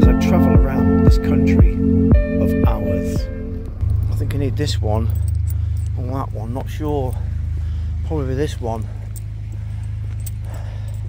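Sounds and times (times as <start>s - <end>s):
low pulsing engine hum: 0.0s - 11.0s
keys jingling: 3.8s - 4.2s, 4.9s - 6.2s, 8.7s - 11.0s.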